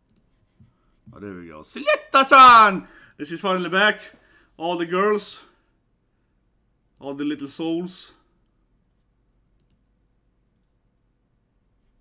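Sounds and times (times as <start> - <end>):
faint clicks: 8.4 - 9.9.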